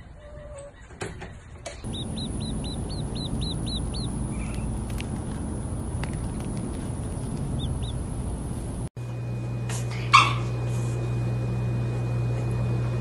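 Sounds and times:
steady low hum: 1.8s - 13.0s
dog yelping: 10.1s - 10.5s.

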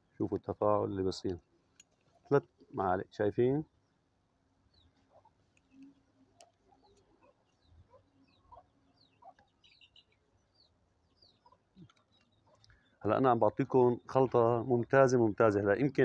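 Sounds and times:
faint bird chirps: 3.4s - 16.0s
chickens clucking: 4.9s - 10.1s, 11.2s - 12.7s.

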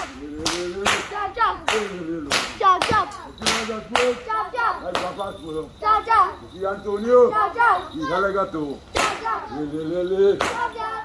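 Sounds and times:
sharp cracks in steady beat: 0.0s - 4.3s, 8.9s - 9.4s, 10.4s - 10.7s
people chanting: 0.0s - 5.1s, 8.9s - 9.8s, 10.4s - 11.0s.

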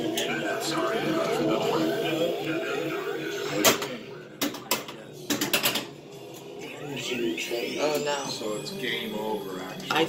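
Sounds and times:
pinball machine mechanisms clacking: 3.6s - 6.0s.

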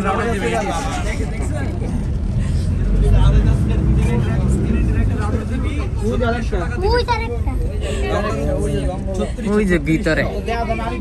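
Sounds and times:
people talking: 0.0s - 11.0s
vehicle engine rumble: 0.0s - 11.0s.

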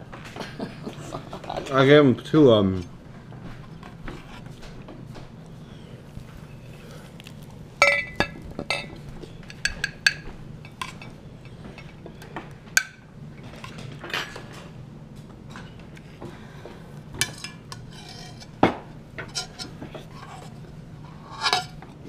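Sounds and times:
dishes and utensils clinking: 7.8s - 14.6s, 17.2s - 20.6s, 21.2s - 21.9s.

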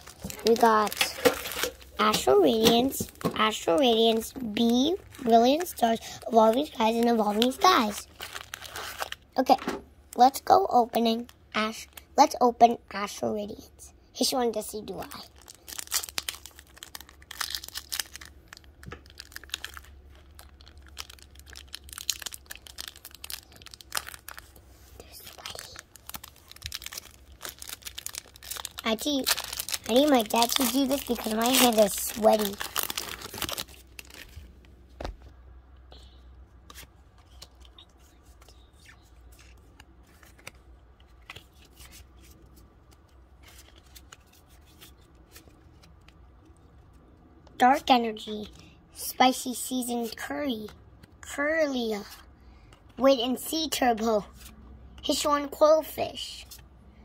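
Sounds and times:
foil wrapper crinkling: 0.0s - 9.2s, 15.1s - 34.6s
low steady hum: 0.0s - 57.0s
cards clicking and sliding: 39.3s - 42.0s.

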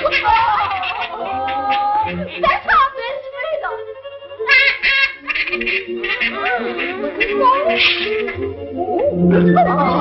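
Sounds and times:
cartoon voices jabbering: 0.0s - 2.8s, 4.5s - 8.4s
cartoon music score: 0.0s - 10.0s.

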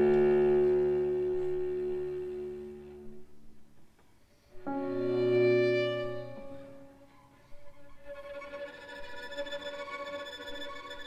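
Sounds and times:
violin cello and piano chord: 4.6s - 11.0s.

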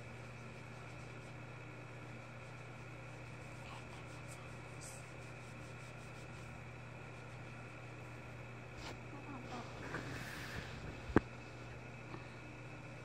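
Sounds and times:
low electrical hum and hiss: 0.0s - 13.0s.

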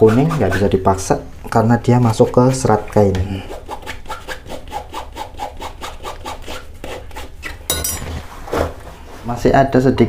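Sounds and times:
hard tool scraping wet fabric: 0.0s - 0.8s.

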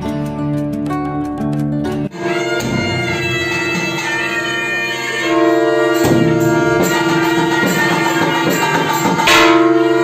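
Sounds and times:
bell struck: 2.2s - 10.0s.

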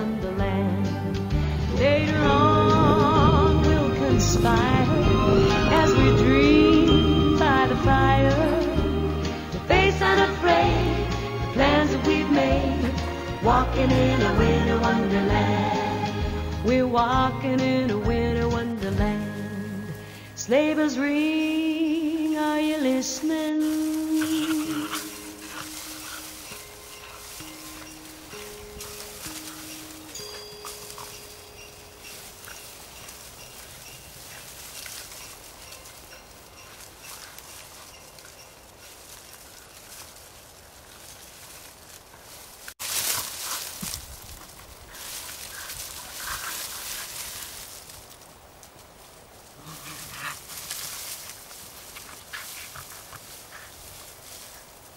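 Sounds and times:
soft background music: 0.0s - 40.1s
dogs rustling and scuffling: 20.7s - 54.9s.

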